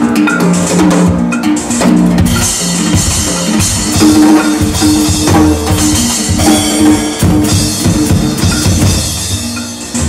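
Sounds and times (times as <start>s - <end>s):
bass drum: 0.0s - 10.0s
drum kit solo: 0.0s - 10.0s.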